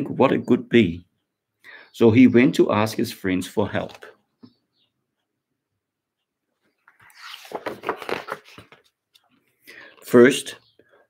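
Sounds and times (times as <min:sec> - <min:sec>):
book pages turning: 0:06.7 - 0:10.1.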